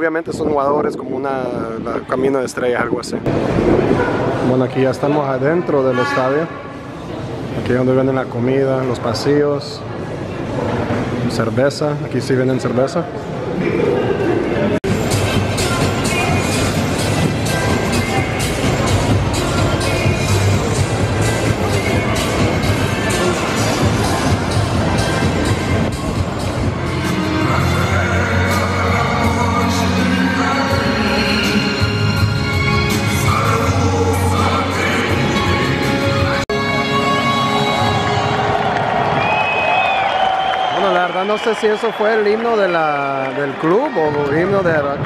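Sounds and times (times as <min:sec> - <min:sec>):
stadium crowd: 0:01.8 - 0:45.0
music over loudspeakers: 0:14.8 - 0:39.2.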